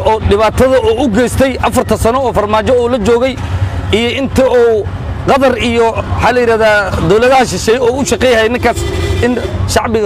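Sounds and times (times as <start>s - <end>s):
low engine rumble: 0.0s - 10.0s
man talking: 0.0s - 10.0s.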